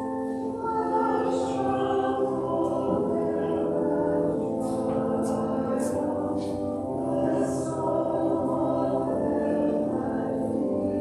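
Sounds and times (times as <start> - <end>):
choir singing sacred music: 0.0 - 11.0.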